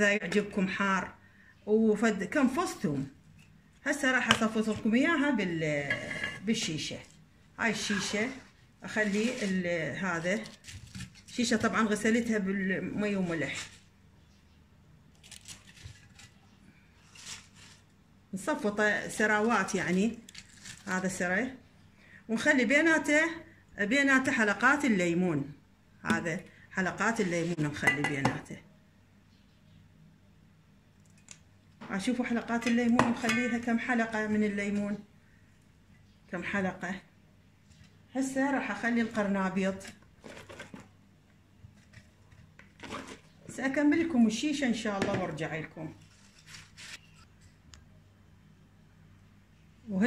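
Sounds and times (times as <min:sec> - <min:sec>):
shredded cabbage rustling: 0:07.7 - 0:12.0, 0:15.2 - 0:16.4, 0:17.0 - 0:17.9, 0:19.4 - 0:21.2, 0:45.9 - 0:47.3.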